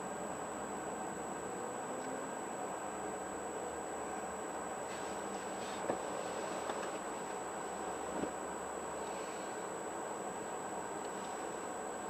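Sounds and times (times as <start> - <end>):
car idling hum and hiss: 0.0 - 12.0
faint high whine: 0.0 - 12.0.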